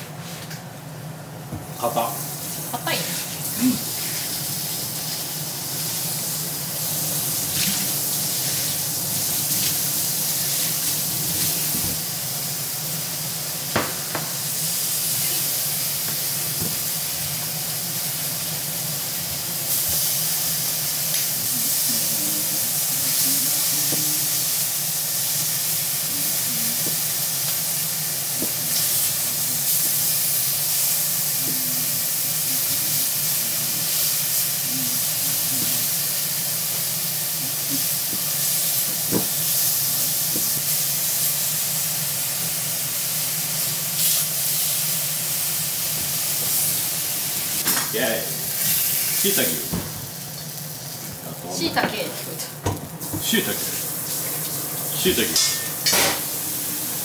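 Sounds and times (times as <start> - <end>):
food sizzling in a wok: 1.8 - 57.0.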